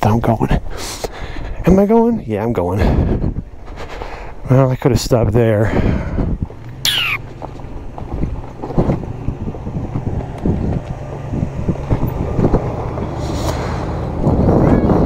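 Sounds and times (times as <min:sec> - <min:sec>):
wind on microphone: 0:02.8 - 0:04.4, 0:05.1 - 0:07.2, 0:08.1 - 0:15.0
tyres crackling over stones: 0:06.5 - 0:09.6
falling squeal: 0:06.8 - 0:07.2.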